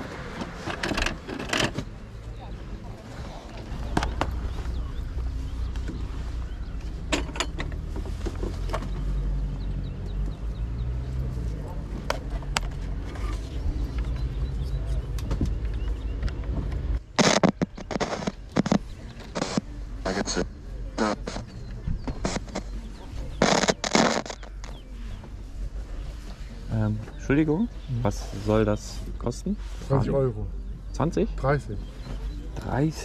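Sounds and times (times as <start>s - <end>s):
radio static and garbled broadcast: 17.2s - 24.8s.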